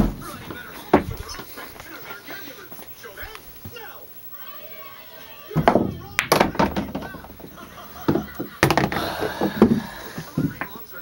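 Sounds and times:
pool balls clacking: 0.0s - 2.2s, 5.5s - 11.0s
loud voices: 0.0s - 11.0s.

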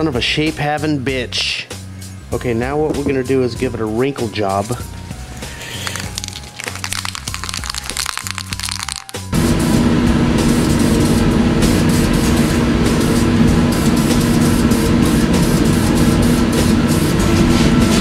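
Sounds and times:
background music: 0.0s - 9.4s
spray can rattling: 5.5s - 9.3s.

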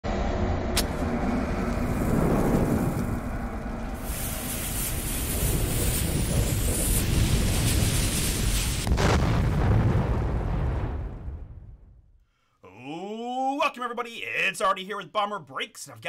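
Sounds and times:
deep steady rumble: 0.0s - 12.1s
rushing hiss of flames: 0.8s - 10.5s.

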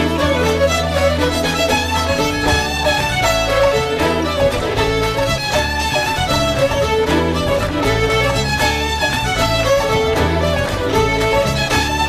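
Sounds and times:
bass accompaniment: 0.0s - 12.0s
fiddles playing: 0.0s - 12.0s.

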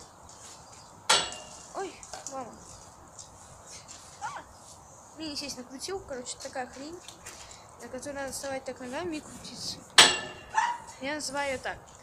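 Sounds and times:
metallic clank with ring: 1.1s - 1.6s, 10.0s - 10.6s.

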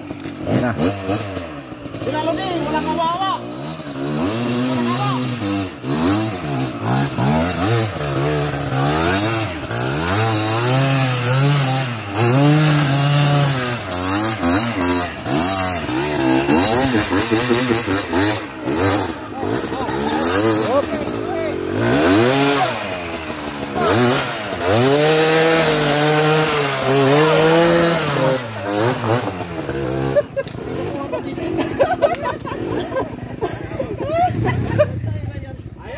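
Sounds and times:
motorcycle engine revving hard: 0.0s - 33.4s, 34.2s - 35.4s.

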